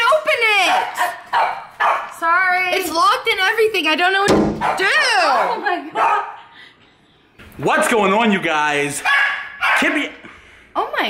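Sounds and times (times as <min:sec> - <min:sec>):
dog yelping: 0:00.4 - 0:02.2, 0:04.6 - 0:06.4, 0:09.0 - 0:10.0
dog barking: 0:00.5 - 0:02.2, 0:04.6 - 0:06.5, 0:09.0 - 0:10.2.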